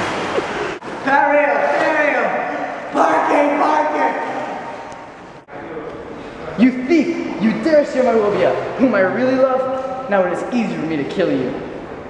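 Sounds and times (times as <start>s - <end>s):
water splashing in pool: 0.0s - 5.2s.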